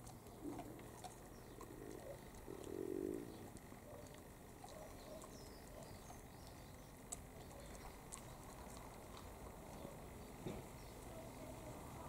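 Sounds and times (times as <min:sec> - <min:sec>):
dog gnawing a bone: 0:00.0 - 0:10.6
bird cooing: 0:01.4 - 0:04.1.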